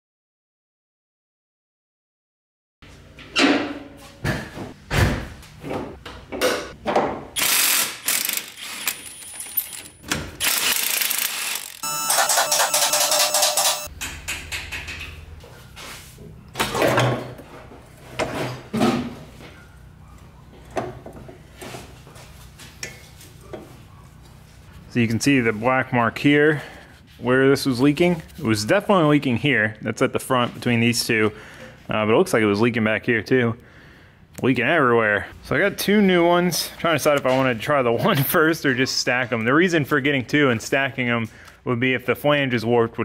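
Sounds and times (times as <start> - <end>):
mechanical clicking and ratcheting: 7.4 - 9.1, 10.4 - 11.8.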